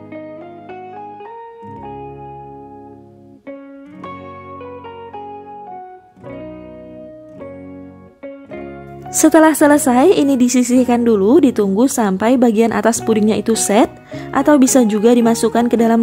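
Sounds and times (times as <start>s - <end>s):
plucked guitar melody: 0.0s - 16.0s.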